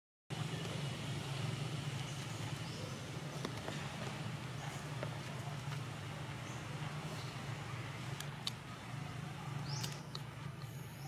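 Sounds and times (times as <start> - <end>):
low outdoor rumble: 0.3 - 11.0.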